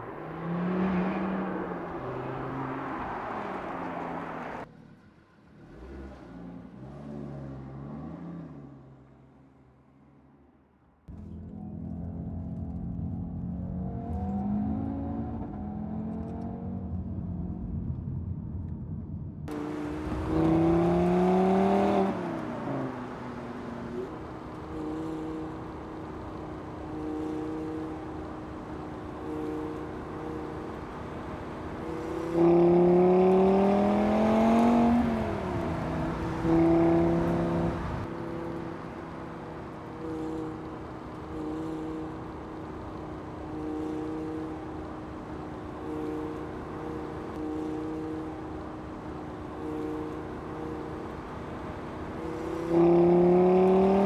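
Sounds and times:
car engine accelerating: 0:00.0 - 0:09.3, 0:11.1 - 0:54.0.

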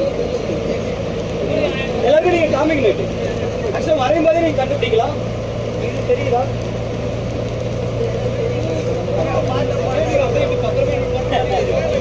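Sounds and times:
bus engine and road noise: 0:00.0 - 0:12.0
passengers chattering: 0:00.0 - 0:12.0.

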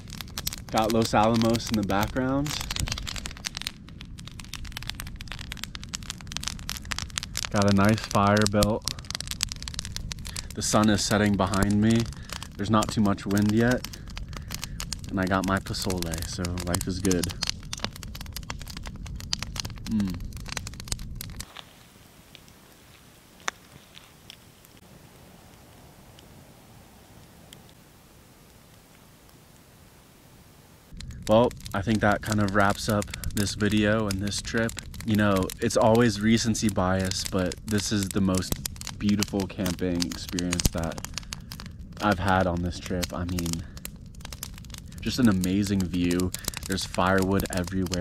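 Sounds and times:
faint steady hiss: 0:00.0 - 0:20.4, 0:21.0 - 0:48.0
campfire crackling and popping: 0:00.0 - 0:48.0
low steady rumble: 0:00.0 - 0:48.0.

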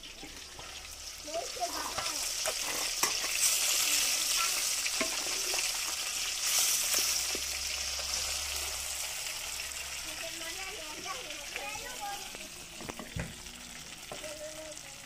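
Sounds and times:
fish sizzling in hot oil: 0:00.0 - 0:15.0.

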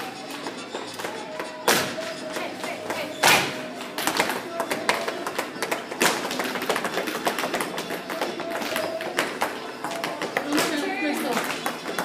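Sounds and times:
dancers tapping and stamping feet: 0:00.2 - 0:12.0.

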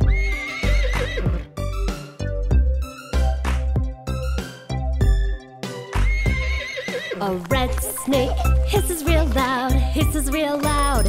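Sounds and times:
horse whinny: 0:00.0 - 0:01.5, 0:06.1 - 0:07.3
children's song with steady beat: 0:07.3 - 0:11.0.

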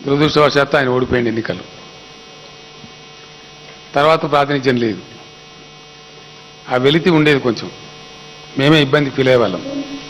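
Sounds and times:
electrical hum with tones: 0:00.0 - 0:10.0.

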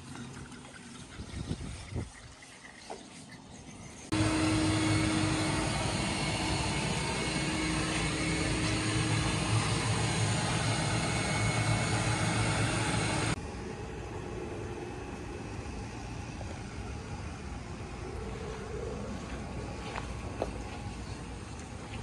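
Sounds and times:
vacuum motor running: 0:04.1 - 0:14.1.

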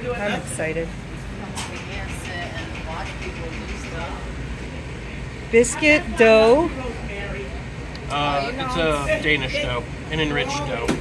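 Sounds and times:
kitchen ventilation hum: 0:00.0 - 0:11.0.

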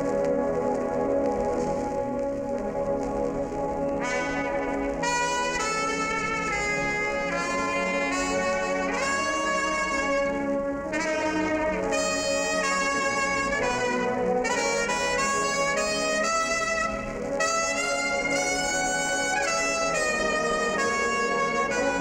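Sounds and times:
solo trumpet melody: 0:00.0 - 0:22.0
wind band accompaniment: 0:00.0 - 0:22.0.

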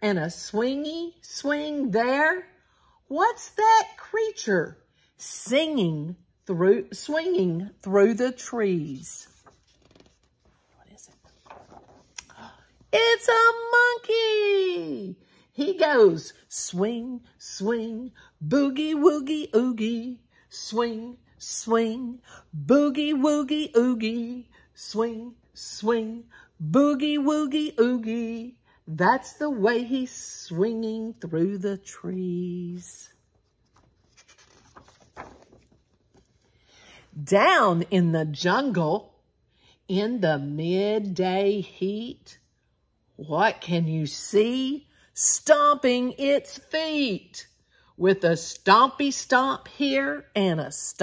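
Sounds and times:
book page turning: 0:09.2 - 0:12.3, 0:33.1 - 0:36.6.

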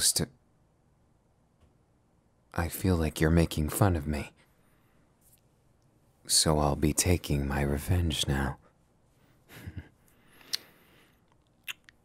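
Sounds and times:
soft breath: 0:04.4 - 0:05.2, 0:09.1 - 0:11.3
lips kiss smack: 0:10.4 - 0:10.7, 0:11.3 - 0:12.0.

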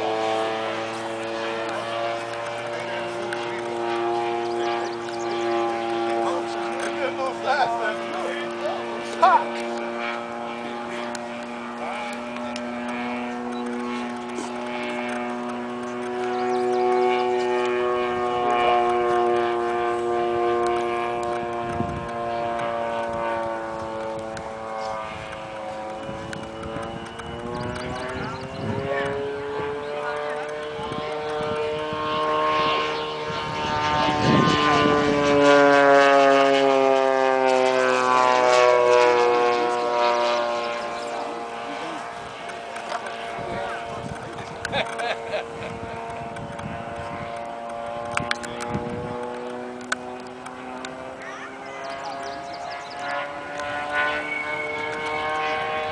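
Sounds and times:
model plane engine droning: 0:00.0 - 0:55.9.

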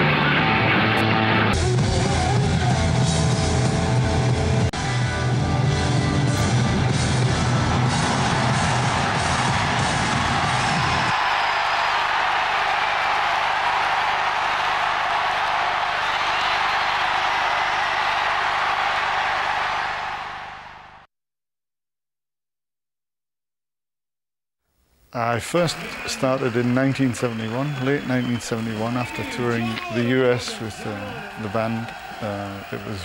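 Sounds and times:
hard rock music: 0:00.0 - 0:11.1.

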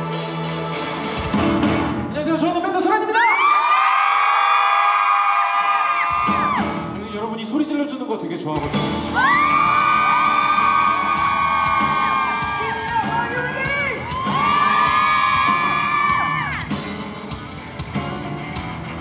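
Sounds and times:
live pop-rock band: 0:00.0 - 0:03.0, 0:03.8 - 0:19.0
audience whooping and cheering: 0:03.0 - 0:06.8, 0:09.1 - 0:16.9.

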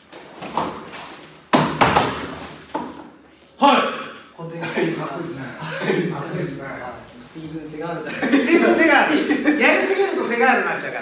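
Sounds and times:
men talking and chuckling: 0:04.4 - 0:07.0, 0:07.7 - 0:10.0.

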